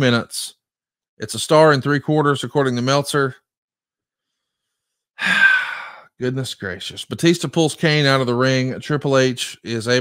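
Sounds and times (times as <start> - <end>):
man sighing: 5.2 - 6.1.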